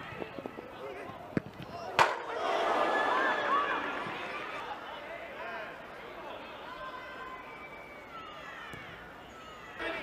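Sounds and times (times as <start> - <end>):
voices shouting on football pitch: 0.0 - 10.0.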